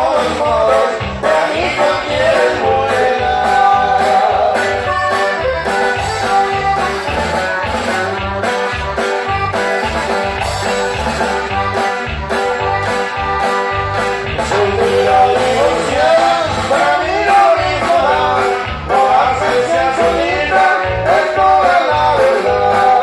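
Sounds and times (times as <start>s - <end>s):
live band playing dance music: 0.0s - 23.0s.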